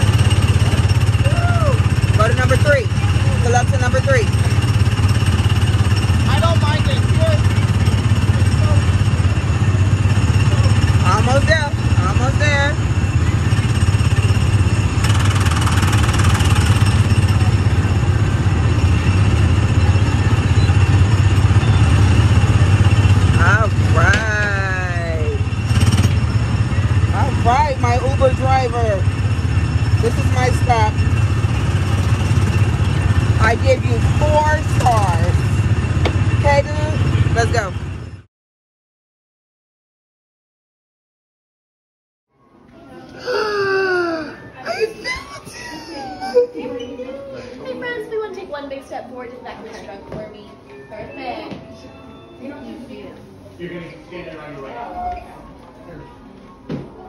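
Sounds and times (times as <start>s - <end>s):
small engine droning: 0.0s - 38.3s.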